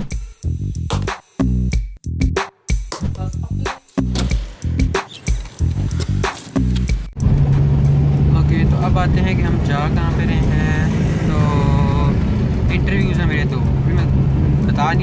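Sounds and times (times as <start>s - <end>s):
background music: 0.0s - 14.6s
car engine and road drone: 4.1s - 15.0s.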